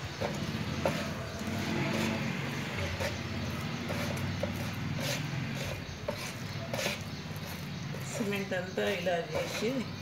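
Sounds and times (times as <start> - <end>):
tool scraping wet mortar: 0.0 - 10.0.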